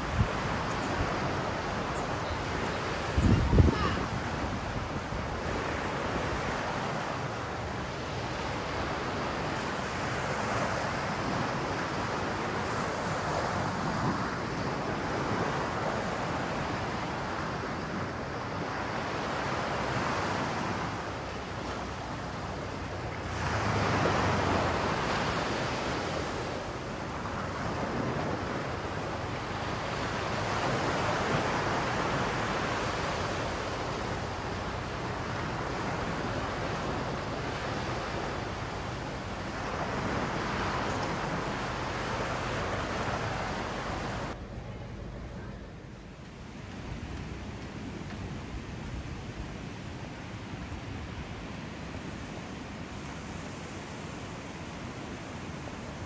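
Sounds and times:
sea surf washing in: 0.0s - 45.3s, 46.0s - 56.0s.

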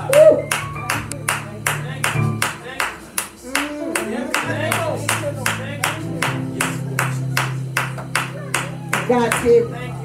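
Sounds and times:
rhythmic hand clapping: 0.0s - 9.6s.

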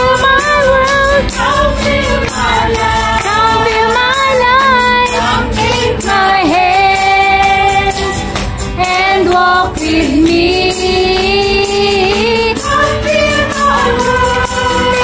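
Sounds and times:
group singing: 0.0s - 15.0s
instrumental accompaniment: 0.0s - 15.0s.

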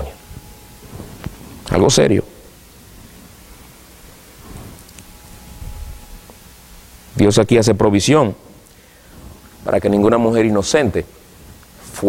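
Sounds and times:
faint rustling: 2.8s - 7.0s.

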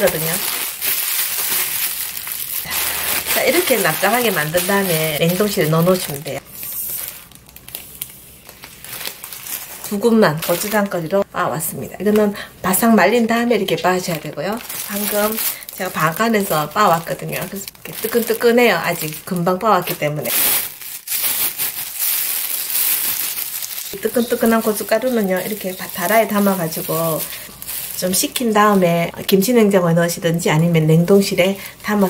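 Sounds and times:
seeds pouring into a bag: 0.0s - 7.8s, 20.2s - 28.2s
plastic bag crinkling: 0.0s - 11.3s, 12.0s - 32.0s.

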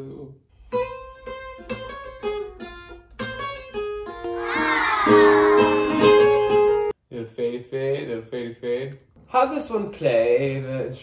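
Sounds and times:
acoustic guitar picking melody: 0.6s - 6.9s.

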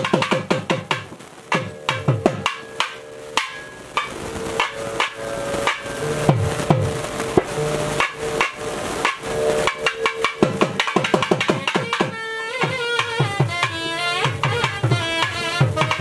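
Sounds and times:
drum struck in uneven rhythm: 0.0s - 16.0s.

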